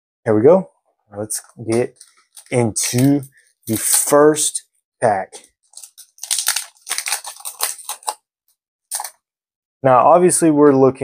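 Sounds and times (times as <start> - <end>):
foil wrapper crinkling and tearing: 1.9 - 4.1, 5.7 - 8.2, 8.9 - 9.1.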